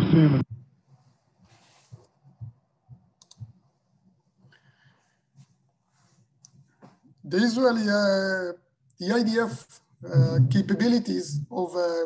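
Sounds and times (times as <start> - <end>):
soft low thumps: 0.0 - 0.8, 10.0 - 10.9
faint quick clicks: 3.2 - 3.5.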